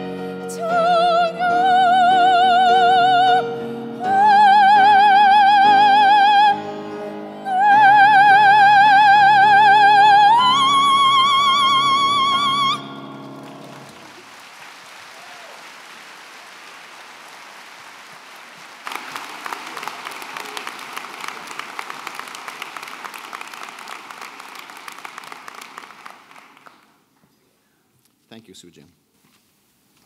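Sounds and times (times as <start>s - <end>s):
woman singing operatic high note: 0.4s - 13.2s
audience applause: 13.1s - 27.0s.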